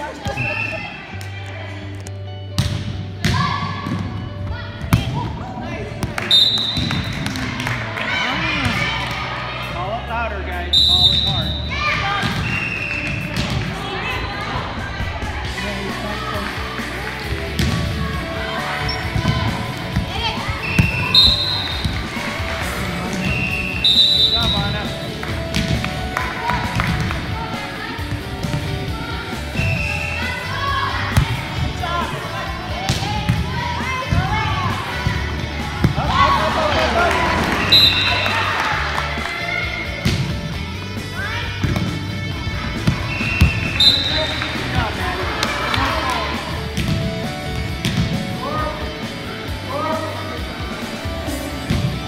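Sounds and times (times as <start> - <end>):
sneakers squeaking: 2.6 - 7.4, 10.8 - 13.8, 18.7 - 22.4, 23.1 - 26.0, 37.4 - 38.5, 42.7 - 45.8
voices echoing: 3.3 - 40.0
volleyball thumps: 17.5 - 18.1, 19.1 - 22.2, 25.5 - 27.2, 31.1 - 31.8, 32.8 - 34.4, 41.6 - 42.0, 42.7 - 45.9, 46.7 - 48.2.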